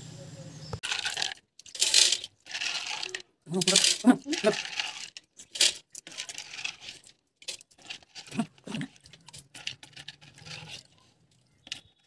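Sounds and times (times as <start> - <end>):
pebbles clattering against glass: 0.8 - 12.0.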